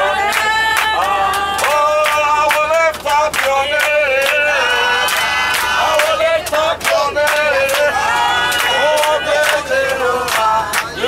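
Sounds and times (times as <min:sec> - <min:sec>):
group singing gospel song: 0:00.0 - 0:11.0
hand claps: 0:00.2 - 0:10.9.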